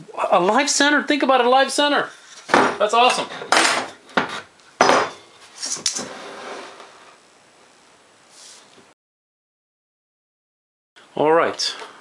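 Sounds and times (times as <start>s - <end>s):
wood scraping: 2.1s - 7.2s
wood and metal knocks: 2.5s - 5.3s.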